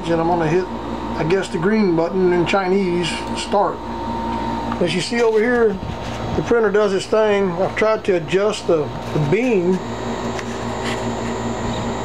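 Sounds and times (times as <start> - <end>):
laser engraver humming: 9.6 - 12.0.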